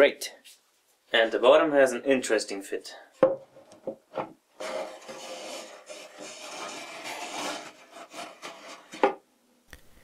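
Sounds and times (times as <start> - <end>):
plywood scraping against wood: 3.8 - 9.2.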